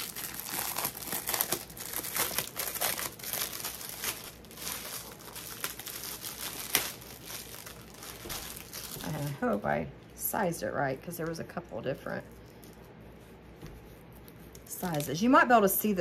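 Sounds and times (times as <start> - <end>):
plastic bag snapping: 0.0 - 9.3
plastic bag crinkling: 0.0 - 9.8, 14.2 - 15.6.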